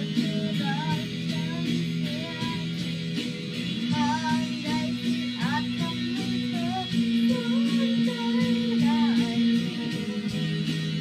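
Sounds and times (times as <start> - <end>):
boy singing pop song: 0.0 - 11.0
instrumental accompaniment: 0.0 - 11.0.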